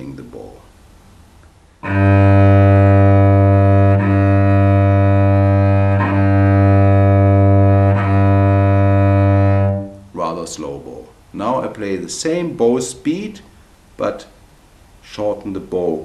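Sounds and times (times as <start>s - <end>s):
cello bowed open string: 1.8s - 10.1s.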